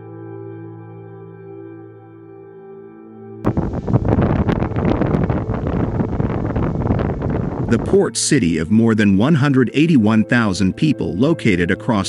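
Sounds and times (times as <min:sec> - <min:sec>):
crackling: 0:03.5 - 0:07.9
volcanic ash explosion rumbling: 0:03.5 - 0:08.2
wind buffeting microphone: 0:03.5 - 0:09.0.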